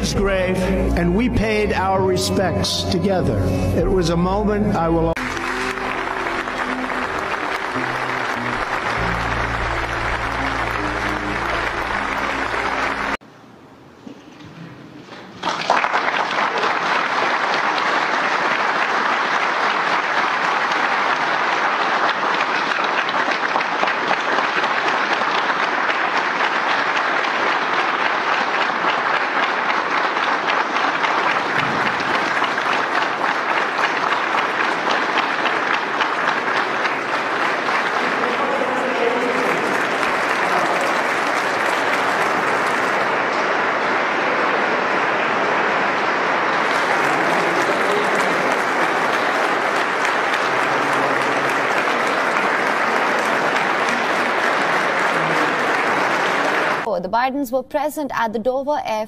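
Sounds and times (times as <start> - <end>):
large crowd applauding: 0.0 - 1.2, 5.1 - 13.2, 15.4 - 56.9.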